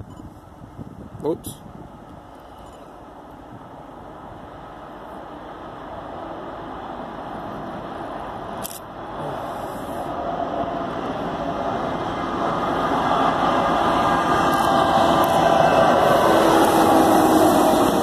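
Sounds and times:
diesel locomotives passing: 0:01.4 - 0:18.0.

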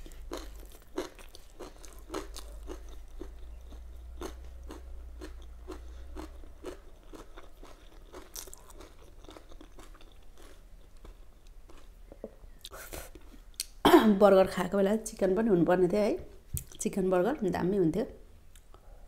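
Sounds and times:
moist crunchy chewing: 0:00.0 - 0:13.8.

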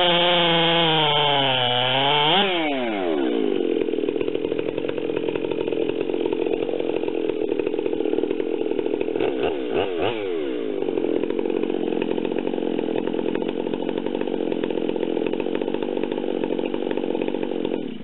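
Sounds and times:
chainsaw engine running: 0:00.0 - 0:18.0.

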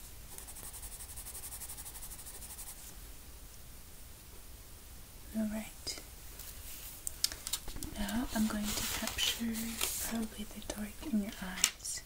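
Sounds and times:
pencil scratching on paper: 0:00.3 - 0:02.9.

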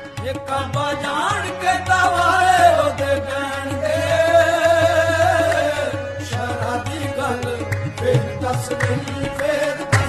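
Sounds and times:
light percussion: 0:00.0 - 0:10.0
person singing devotional song: 0:00.0 - 0:10.0.

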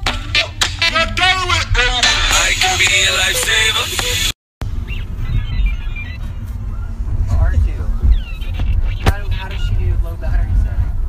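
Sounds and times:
music burst: 0:00.0 - 0:06.5
car cabin road rumble: 0:00.0 - 0:11.0.

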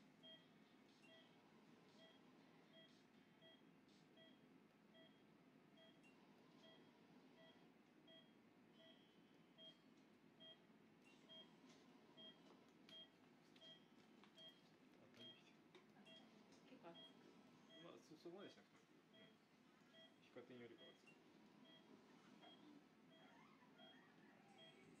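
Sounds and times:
patient monitor beeping: 0:00.2 - 0:09.8, 0:10.4 - 0:16.3, 0:16.9 - 0:18.1, 0:19.0 - 0:25.0.

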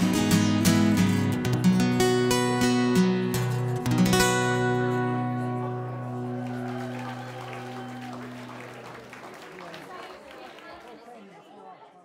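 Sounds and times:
acoustic guitar chord ringing: 0:00.0 - 0:07.1
murmur of crowd chatting: 0:00.0 - 0:12.0.

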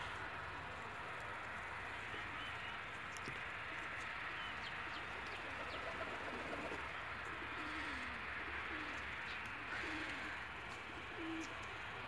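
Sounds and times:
pigeons cooing: 0:03.8 - 0:12.0.

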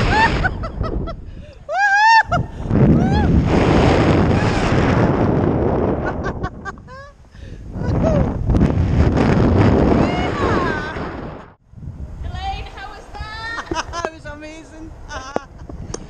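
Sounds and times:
wind rushing over microphone: 0:00.0 - 0:16.0
woman shrieking and yelping: 0:01.7 - 0:03.3.

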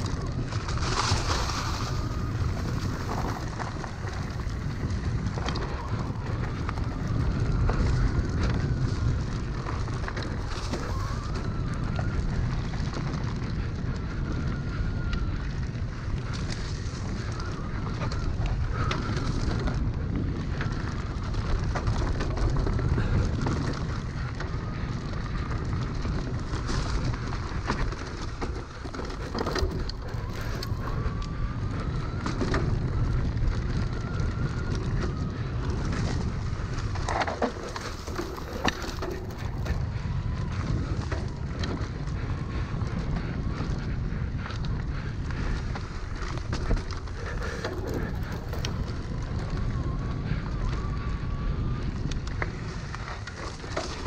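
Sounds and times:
bike rattling and knocking: 0:00.0 - 0:54.0
tyre rumble: 0:00.0 - 0:54.0
wind: 0:00.0 - 0:54.0.

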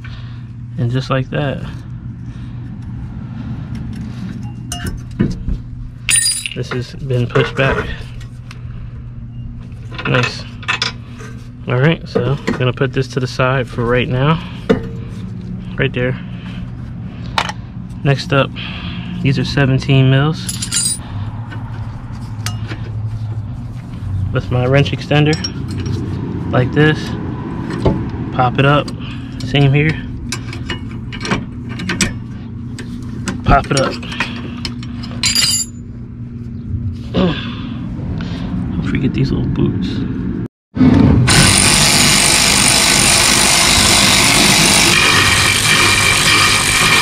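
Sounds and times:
steady low hum: 0:00.0 - 0:40.5
wrench clinking on metal: 0:06.1 - 0:06.7, 0:20.5 - 0:21.0, 0:35.0 - 0:35.8.

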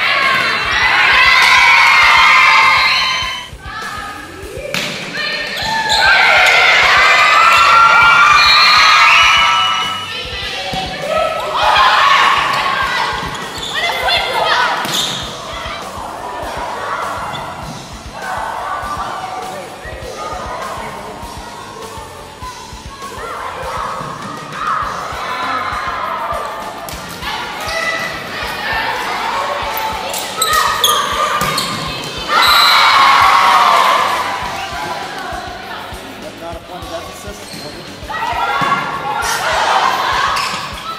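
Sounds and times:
players calling out: 0:00.0 - 0:40.9
sneakers squeaking on court: 0:05.4 - 0:06.5, 0:12.4 - 0:15.6, 0:29.7 - 0:32.8, 0:37.2 - 0:38.9.

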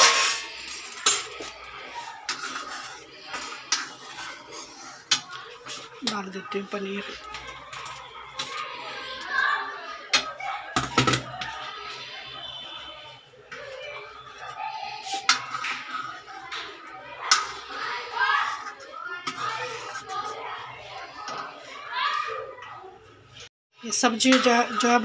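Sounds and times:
ladle scraping metal pot: 0:00.0 - 0:22.0
voices: 0:00.0 - 0:25.0.

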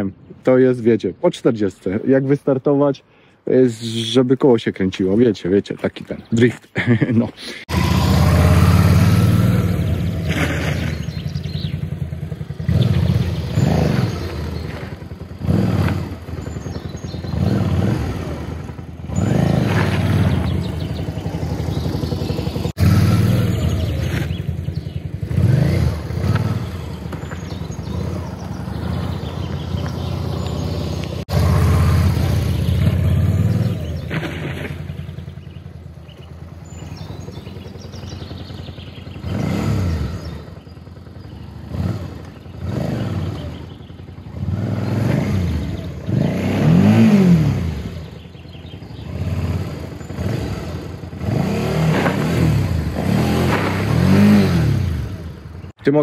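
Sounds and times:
motorcycle engine revving: 0:07.6 - 0:55.8.

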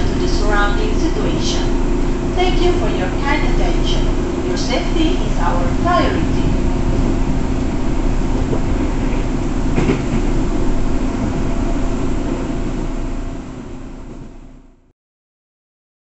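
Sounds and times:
train wheels rumbling on rails: 0:00.0 - 0:14.8
low hum: 0:00.0 - 0:14.9.

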